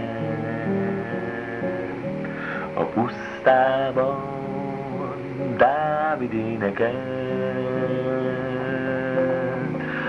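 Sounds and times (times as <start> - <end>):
person singing christian song: 0.0 - 10.0.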